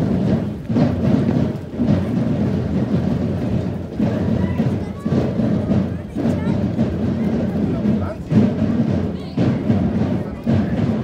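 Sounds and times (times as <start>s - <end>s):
parade drums beating: 0.0s - 11.0s.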